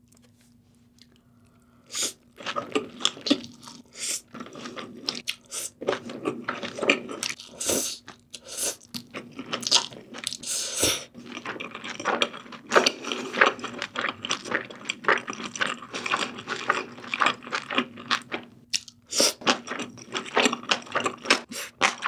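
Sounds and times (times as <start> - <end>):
chewing: 2.3 - 10.5, 11.1 - 22.0.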